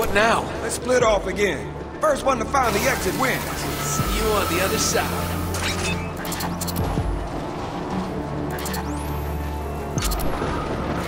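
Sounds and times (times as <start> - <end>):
film soundtrack music: 0.0 - 11.0.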